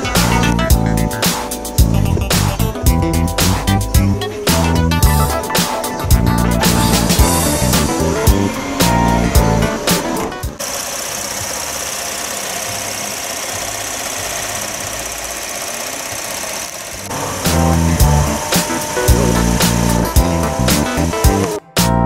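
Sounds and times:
background music with a beat: 0:00.0 - 0:10.6, 0:17.5 - 0:22.0
car engine idling: 0:00.0 - 0:21.6.

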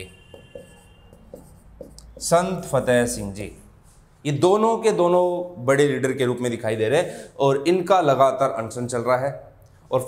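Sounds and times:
pen writing on a board: 0:00.2 - 0:02.6.

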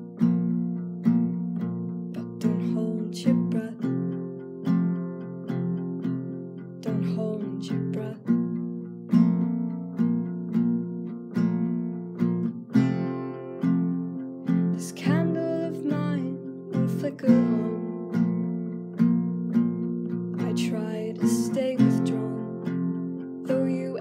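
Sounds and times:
guitar chords ringing: 0:00.0 - 0:24.0.

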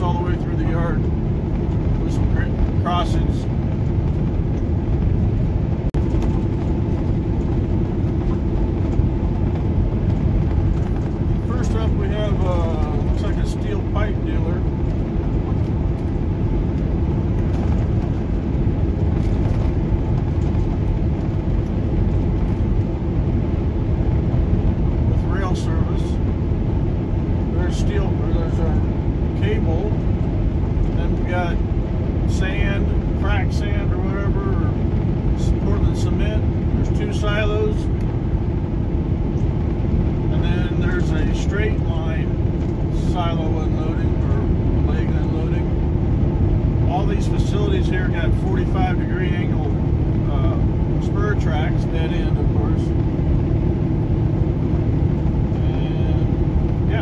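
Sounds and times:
constant hum: 0:00.0 - 0:57.0
road noise: 0:00.0 - 0:57.0
truck engine drone: 0:00.0 - 0:57.0.

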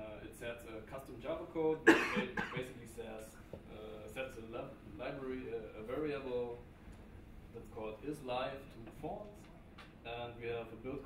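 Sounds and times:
man coughing: 0:01.8 - 0:02.7.

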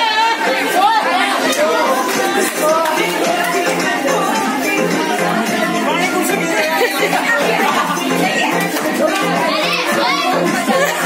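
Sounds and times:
young men chattering: 0:00.5 - 0:11.0.

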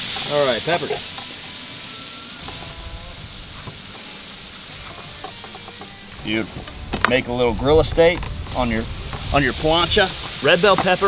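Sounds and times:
vegetables sizzling on a griddle: 0:00.0 - 0:11.0.

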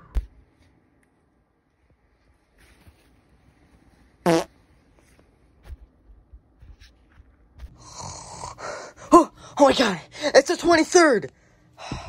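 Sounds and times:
buzzy fart sound: 0:04.2 - 0:04.6.

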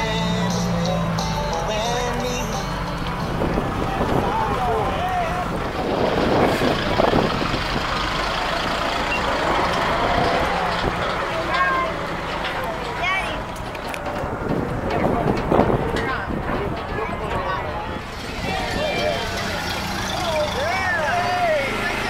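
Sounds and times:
crowd hubbub: 0:00.0 - 0:22.0
parade vehicles running: 0:00.0 - 0:22.0
people calling out: 0:00.6 - 0:06.1, 0:15.8 - 0:22.0.

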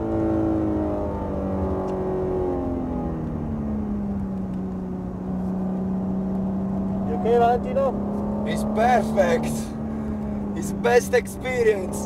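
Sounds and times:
car engine from inside cabin: 0:00.0 - 0:12.0.

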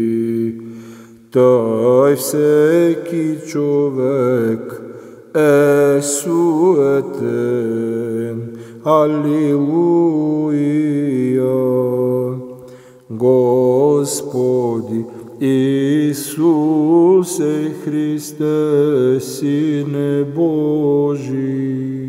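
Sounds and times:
man chanting: 0:00.0 - 0:22.0.

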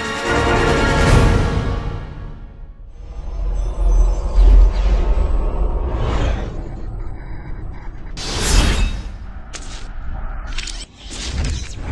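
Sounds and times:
steady low bed: 0:02.4 - 0:11.9.

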